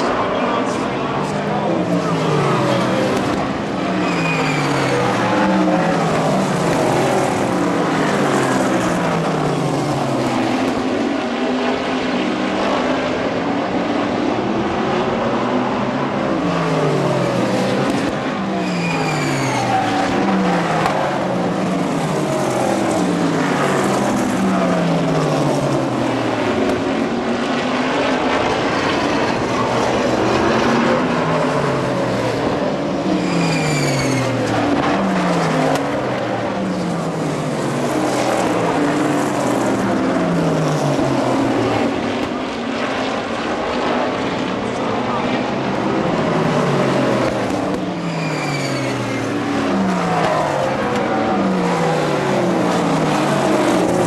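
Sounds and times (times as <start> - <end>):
race car engines passing by: 0.0 - 54.0.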